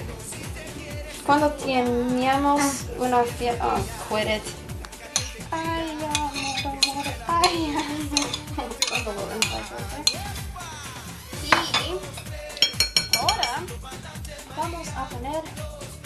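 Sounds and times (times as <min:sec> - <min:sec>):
metal spoon scraping ceramic bowls: 0:05.0 - 0:10.4, 0:11.4 - 0:13.8.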